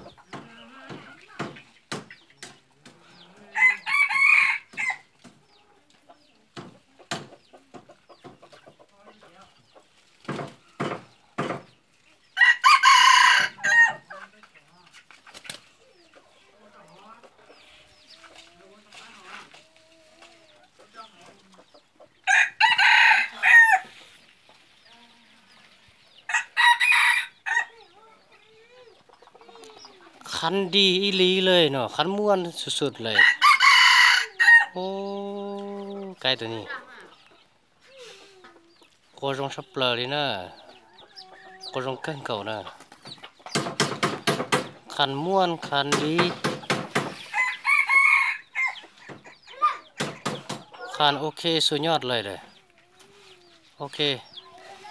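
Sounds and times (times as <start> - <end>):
rooster decoy crowing: 3.4 - 5.1, 12.4 - 14.0, 22.2 - 23.9, 26.3 - 27.8, 33.1 - 34.8, 47.0 - 49.0.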